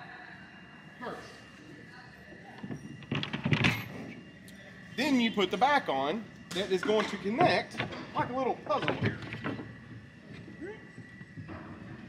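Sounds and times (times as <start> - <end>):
background chatter: 0.0 - 7.8.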